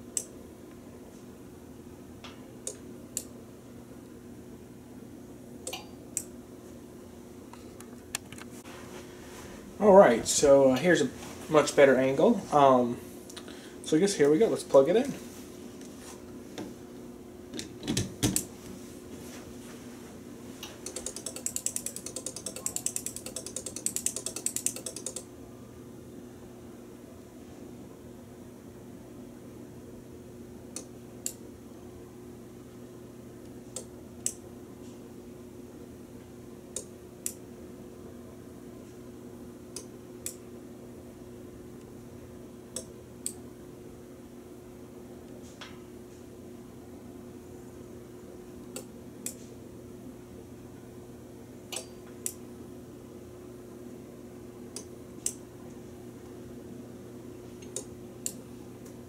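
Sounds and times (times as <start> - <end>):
steady low hum: 0.0 - 59.0
sharp switching clicks: 20.8 - 25.3, 57.6 - 58.4.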